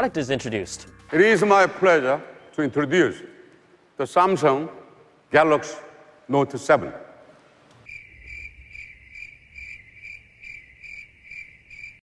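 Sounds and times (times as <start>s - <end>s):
cricket chirping: 7.8s - 12.0s.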